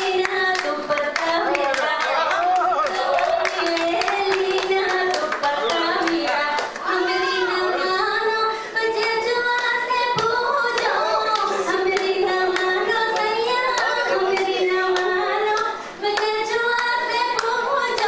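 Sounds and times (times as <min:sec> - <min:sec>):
audience clapping in time: 0:00.0 - 0:06.9
woman singing into a microphone: 0:00.0 - 0:18.0.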